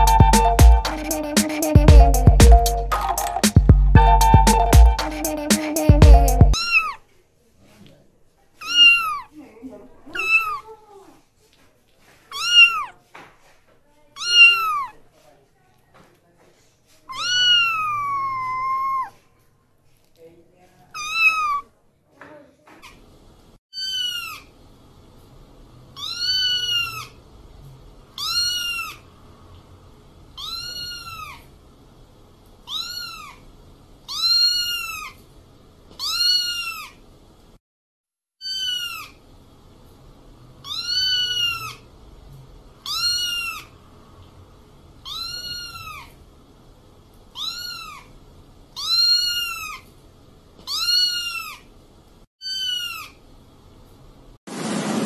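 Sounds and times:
kitten mewing: 6.6s - 7.0s, 8.6s - 9.3s, 10.1s - 10.8s, 12.3s - 13.0s, 14.2s - 15.0s, 17.1s - 19.2s, 21.0s - 21.7s, 26.0s - 27.1s, 30.4s - 31.5s, 32.7s - 33.4s, 34.1s - 35.2s, 36.0s - 37.0s, 38.4s - 39.2s, 40.6s - 41.8s, 42.8s - 43.7s, 45.0s - 46.2s, 47.4s - 48.1s, 48.8s - 49.9s, 50.7s - 51.7s.

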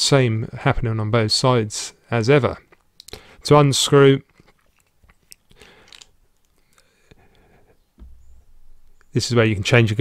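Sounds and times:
soft low bump: 8.0s - 8.9s.

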